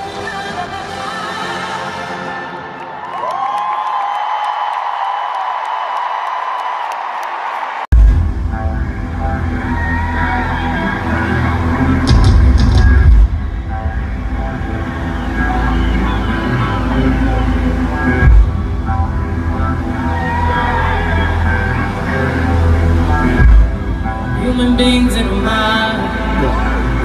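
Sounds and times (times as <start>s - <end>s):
loud bass-heavy music: 7.9s - 27.0s.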